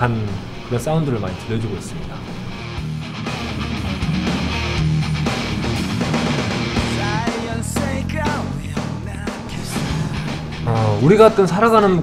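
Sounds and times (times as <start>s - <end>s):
distorted electric guitar: 0.0s - 12.0s
heavy metal band playing live: 2.3s - 11.4s.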